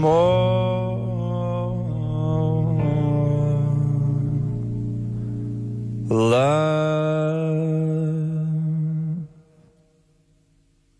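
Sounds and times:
man humming low note: 0.0 - 5.2, 5.9 - 9.6.

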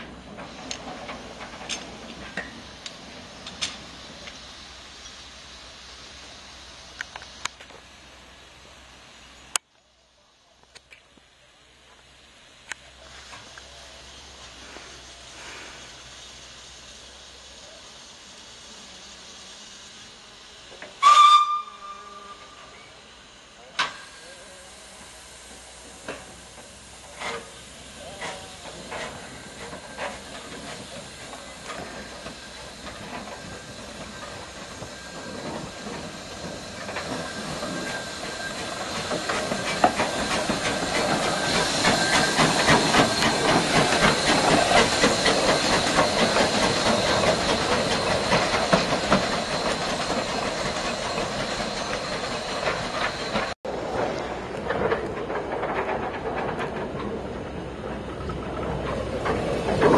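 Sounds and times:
steam hissing from drain cocks: 0.0 - 9.6, 11.6 - 53.6
steam locomotive exhaust beats: 0.0 - 59.9
steam locomotive whistle: 20.9 - 23.0.

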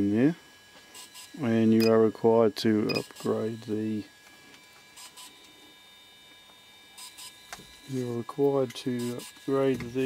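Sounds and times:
faint electronic whines: 0.0 - 10.0.

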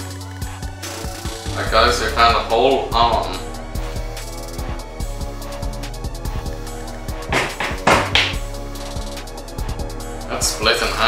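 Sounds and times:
background music with beat: 0.0 - 11.0
hammer and chisel chipping plaster: 7.3 - 8.4.

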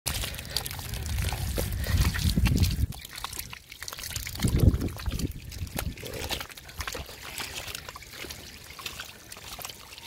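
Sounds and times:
mud and water squelching: 0.1 - 10.0
small wet clicks: 0.1 - 10.0.

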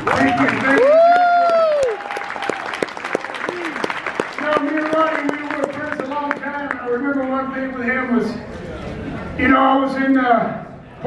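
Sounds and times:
person cheering: 0.1 - 2.8, 3.4 - 3.9.

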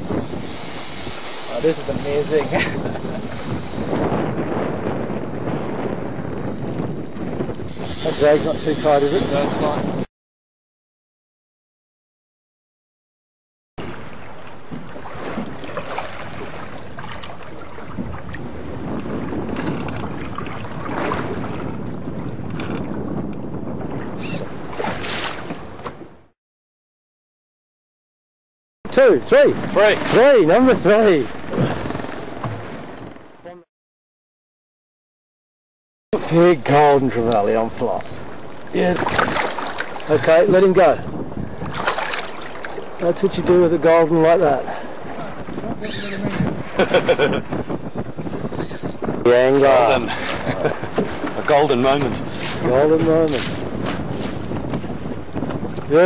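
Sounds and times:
wind noise on microphone: 0.0 - 10.1, 13.8 - 26.3, 28.9 - 33.7, 36.2 - 56.0
water lapping around boat: 13.8 - 26.2, 29.0 - 33.4, 36.2 - 56.0
short splashes: 15.0 - 18.4, 38.6 - 40.4, 41.6 - 43.0.

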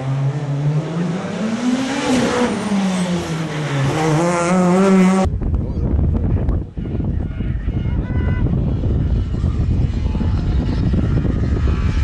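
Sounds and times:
rally car engine revving: 0.0 - 5.4
wind rumble on microphone: 5.2 - 12.0.

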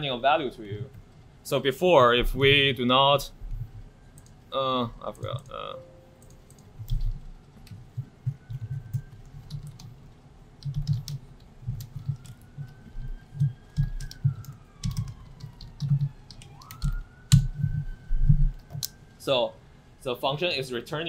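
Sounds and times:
typing on a keyboard: 4.1 - 4.4, 5.1 - 5.6, 6.2 - 18.9.

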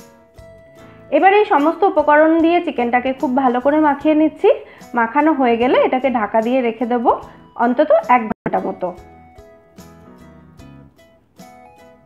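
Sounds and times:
soft plucked background music: 0.0 - 12.0
woman speaking: 1.1 - 9.0.

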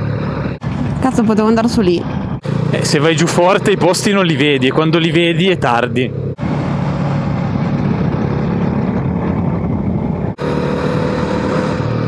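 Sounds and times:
motorcycle engine running: 0.0 - 12.0
wind rushing over microphone: 6.4 - 10.4.

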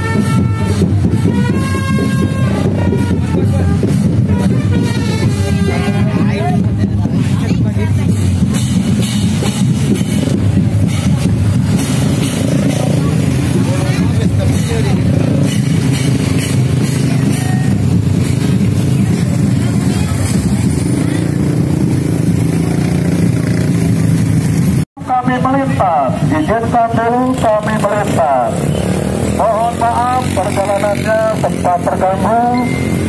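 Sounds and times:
crowd voices: 0.0 - 33.0
motorcycle engines idling and revving: 0.0 - 33.0.

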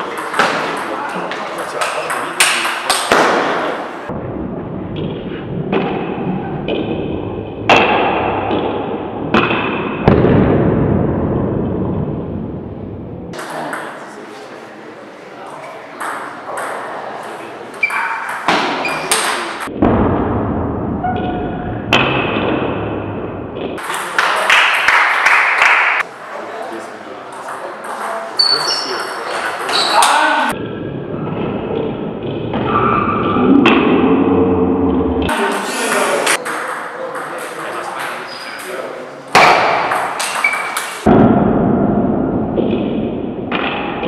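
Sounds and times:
low rumble of hall noise: 3.8 - 7.7, 10.0 - 15.8
faint voices: 35.3 - 39.3.

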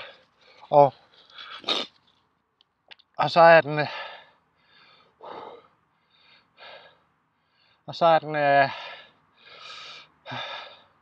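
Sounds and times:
man speaking: 0.7 - 1.0, 7.9 - 8.8
man gasping: 8.7 - 11.0.

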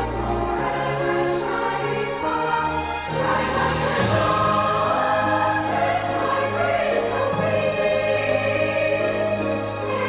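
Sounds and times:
choir singing slow chords: 0.0 - 10.0.

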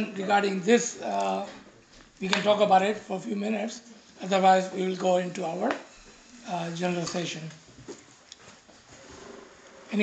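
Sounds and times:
person speaking: 0.0 - 1.6, 2.2 - 7.6
faint steady hum: 0.0 - 10.0.

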